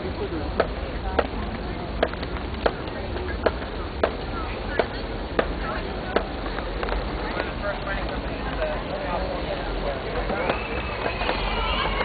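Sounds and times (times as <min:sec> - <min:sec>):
steady low rumble: 0:00.0 - 0:11.7
faint crowd chatter: 0:00.0 - 0:12.0
footsteps on paved path: 0:00.6 - 0:12.0.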